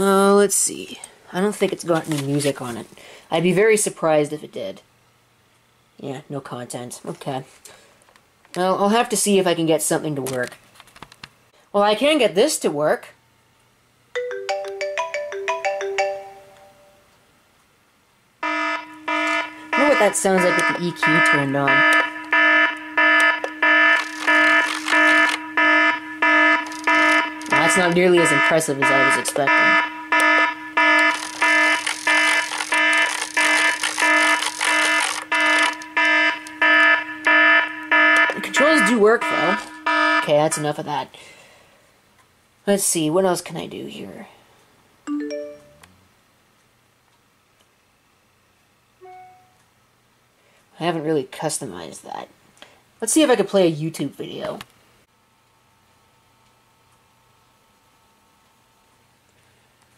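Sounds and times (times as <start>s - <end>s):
clock radio alarm beeping: 18.4s - 40.7s
electronic alert chime: 18.6s - 33.0s, 36.1s - 40.3s, 45.1s - 45.8s, 49.0s - 49.6s.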